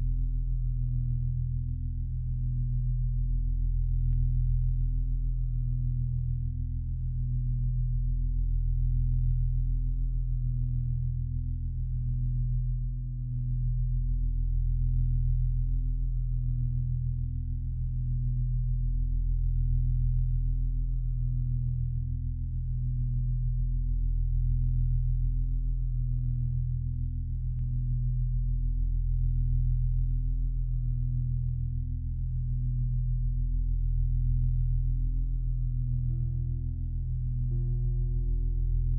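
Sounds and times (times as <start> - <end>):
ambient drone music: 34.0 - 38.9.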